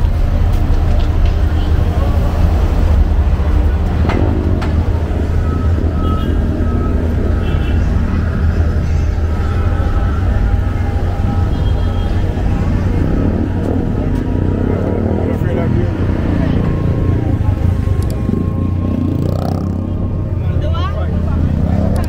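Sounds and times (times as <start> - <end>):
people's voices: 0.0 - 5.4, 6.7 - 22.0
vehicles rumbling: 0.0 - 22.0.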